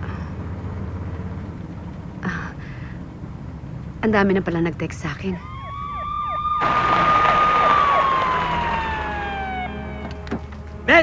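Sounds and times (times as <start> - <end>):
siren falling in pitch: 5.4 - 10.4
rush of noise: 6.6 - 10.0.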